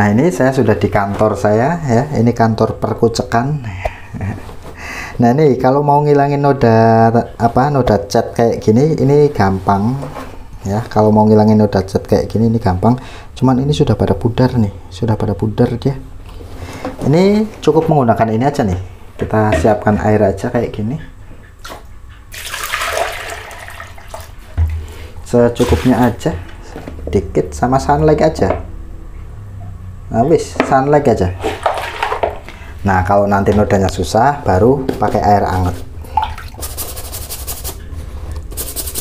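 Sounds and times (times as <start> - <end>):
water pouring into plastic dipper: 22.4 - 24.8
toothbrush scrubbing wet fabric: 36.5 - 39.0.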